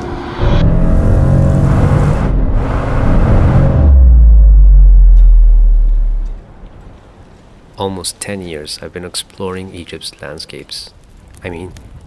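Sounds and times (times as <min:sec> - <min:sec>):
deep bass boom: 0:00.0 - 0:06.6.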